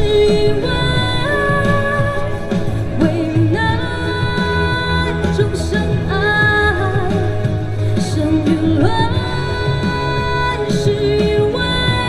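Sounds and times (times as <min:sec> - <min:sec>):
amplified pop accompaniment: 0:00.0 - 0:12.0
woman singing pop ballad: 0:00.0 - 0:12.0.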